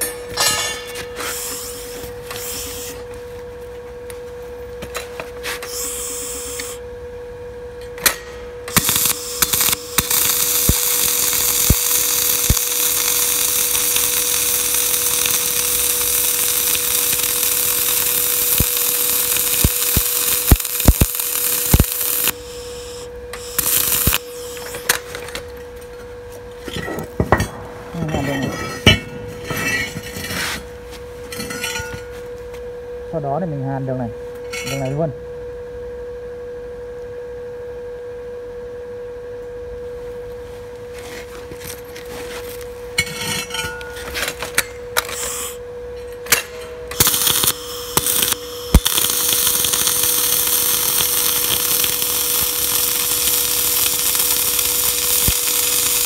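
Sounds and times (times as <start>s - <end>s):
steady humming tone: 0.0s - 56.0s
arc welding crackling: 5.6s - 6.8s, 8.0s - 25.5s, 46.3s - 56.0s.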